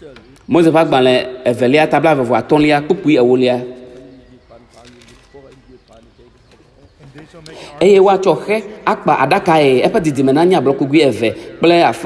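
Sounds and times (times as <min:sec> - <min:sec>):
loud speech: 0:00.0 - 0:12.0.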